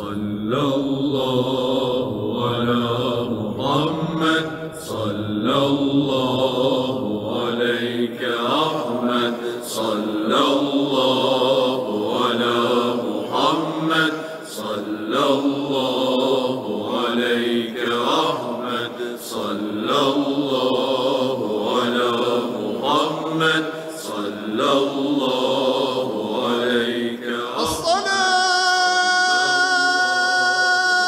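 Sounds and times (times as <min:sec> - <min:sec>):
devotional chanting: 0:00.0 - 0:31.0.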